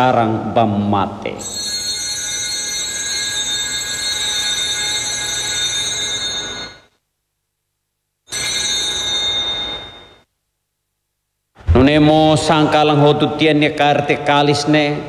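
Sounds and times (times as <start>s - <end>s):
small brass bells ringing: 8.3s - 10.2s.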